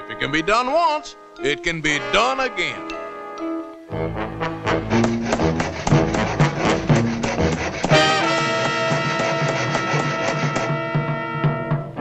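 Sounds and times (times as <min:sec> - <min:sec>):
orchestral cartoon music with brass: 0:01.9 - 0:12.0.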